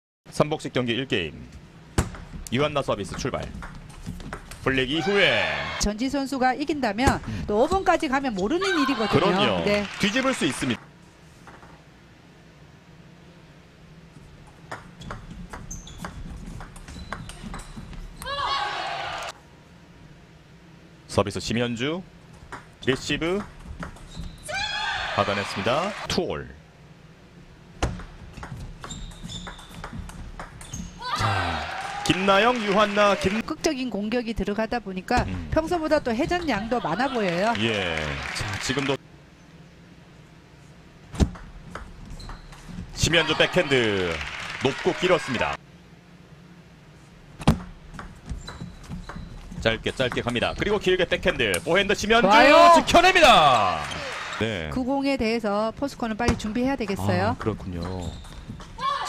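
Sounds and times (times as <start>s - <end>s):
people shouting and cheering: 4.9s - 5.9s, 8.6s - 9.8s, 18.2s - 19.4s, 24.5s - 26.1s, 31.0s - 33.4s, 43.0s - 45.6s, 52.2s - 54.6s
low hall ambience: 10.4s - 28.8s.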